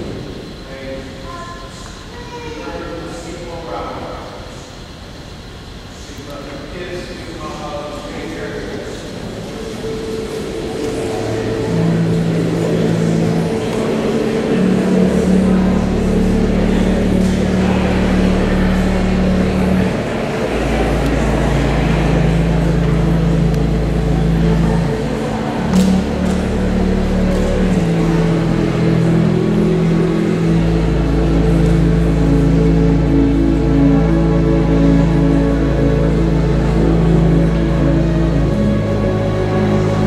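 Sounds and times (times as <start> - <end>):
crowd noise: 0.0 - 5.0, 5.9 - 40.0
pipe organ chords: 6.6 - 40.0.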